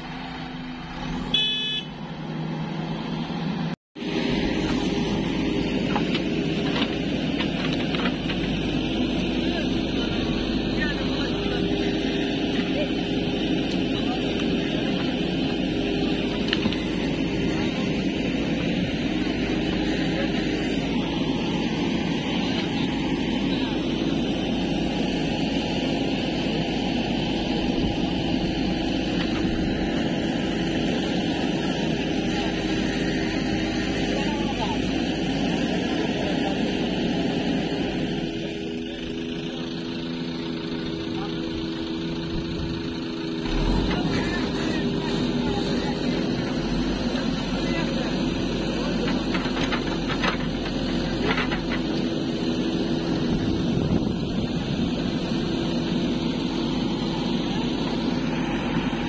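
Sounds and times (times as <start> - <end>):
diesel engine running under load: 0.0 - 59.0.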